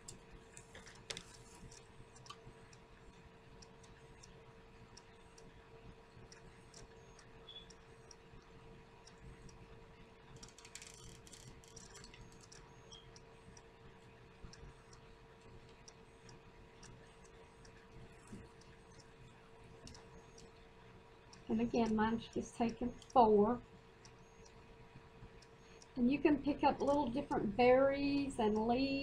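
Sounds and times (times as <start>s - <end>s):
faint hum: 0.0s - 29.0s
faint ticking: 1.1s - 29.0s.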